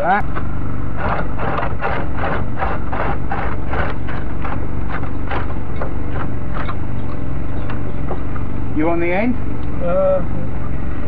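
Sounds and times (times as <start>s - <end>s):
steady engine drone: 0.0s - 11.0s
hand saw cutting wood: 1.0s - 6.8s.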